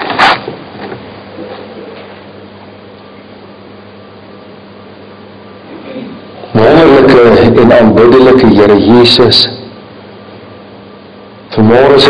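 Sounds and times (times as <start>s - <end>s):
people rustling and shuffling: 0.0s - 2.3s
low room hum: 0.0s - 12.0s.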